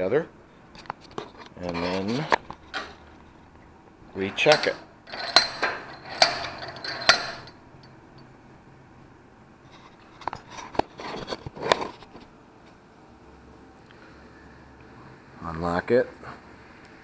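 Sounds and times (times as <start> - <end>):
metal tools clinking: 2.7 - 3.0, 4.2 - 7.6.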